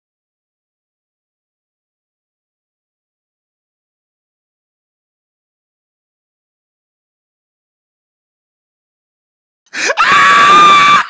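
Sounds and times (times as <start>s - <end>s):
high-pitched scream: 9.8s - 11.0s.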